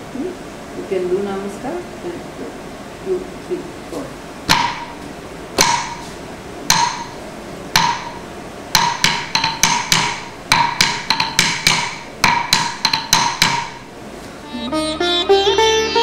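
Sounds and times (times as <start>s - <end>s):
wooden stick striking wooden block: 4.5s - 5.0s, 5.6s - 6.1s, 6.7s - 13.9s.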